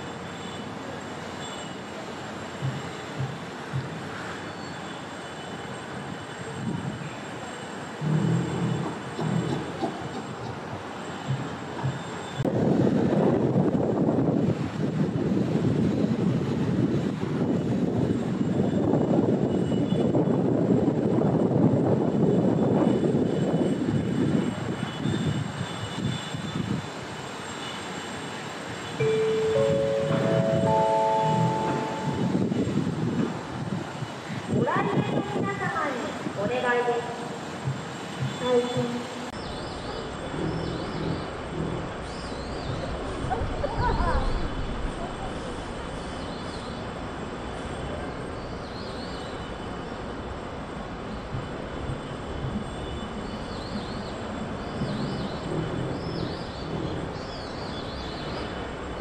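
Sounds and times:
rising chime: 29.0 - 32.8.

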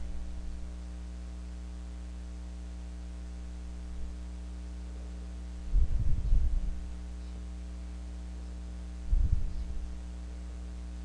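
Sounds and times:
irregular low rumble: 0.0 - 0.9, 5.5 - 7.4, 9.0 - 10.0
electrical mains hum: 0.0 - 11.0.

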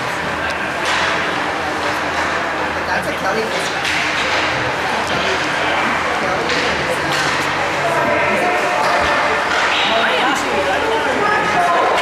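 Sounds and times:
spectator chatter: 0.0 - 12.0.

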